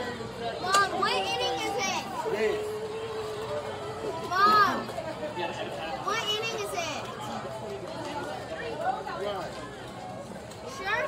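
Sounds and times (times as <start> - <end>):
girls calling out and talking: 0.0 - 5.0, 6.0 - 7.1.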